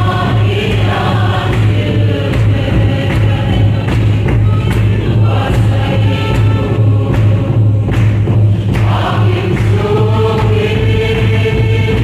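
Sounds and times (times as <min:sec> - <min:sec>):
choir and congregation singing hymn: 0:00.0 - 0:12.0
steady low beat: 0:00.0 - 0:12.0.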